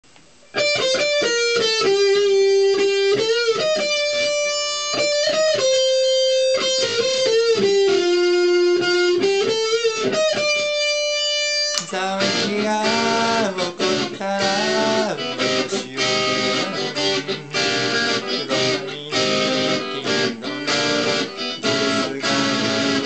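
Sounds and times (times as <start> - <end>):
electric guitar melody: 0.4 - 23.0.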